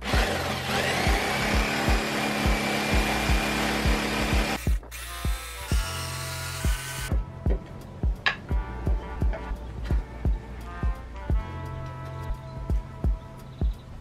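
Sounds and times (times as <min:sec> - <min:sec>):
electric jigsaw cutting board: 0:00.0 - 0:07.1.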